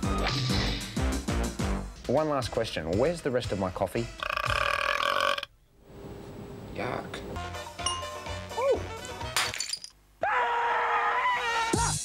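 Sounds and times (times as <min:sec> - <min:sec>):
long burp: 0:04.2 - 0:05.5.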